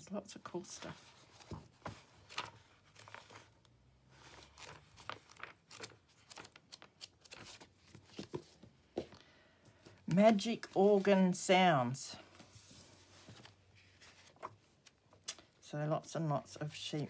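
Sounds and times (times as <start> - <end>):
book pages rustling: 0.4 - 11.4, 12.3 - 15.5.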